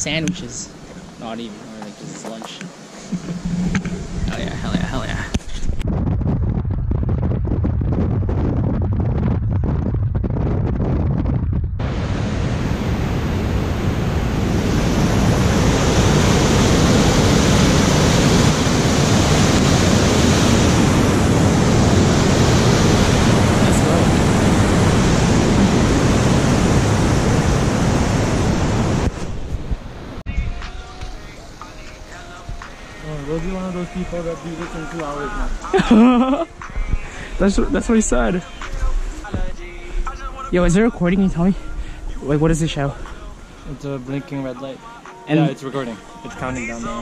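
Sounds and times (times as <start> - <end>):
car wind and road noise: 0.0 - 30.3.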